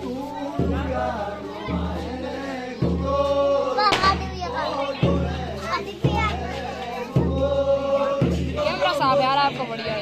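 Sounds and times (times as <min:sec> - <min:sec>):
deep drum beat: 0:00.0 - 0:10.0
group singing folk song: 0:00.0 - 0:10.0.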